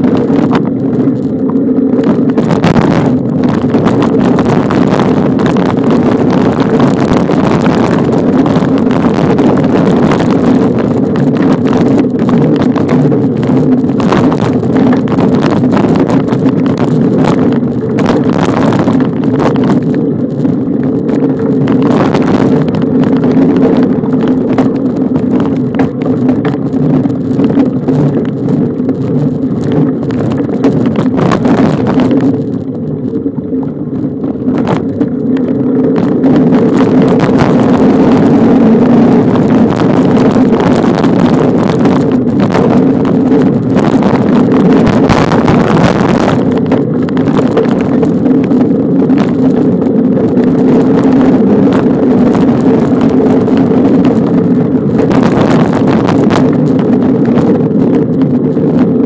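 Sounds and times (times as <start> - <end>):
bicycle rattling on dirt trail: 0.0 - 59.0
wind buffeting microphone: 0.0 - 59.0.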